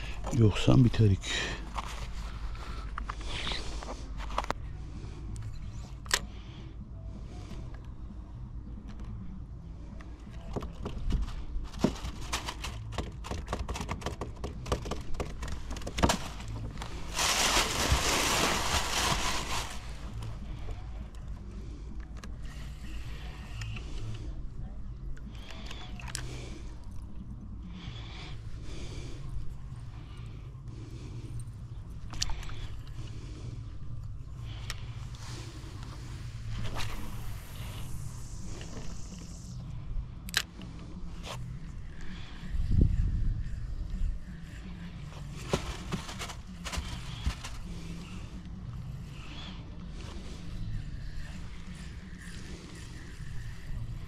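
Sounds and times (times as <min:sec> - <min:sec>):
steady low hum: 0:00.0 - 0:13.3, 0:14.2 - 0:54.0.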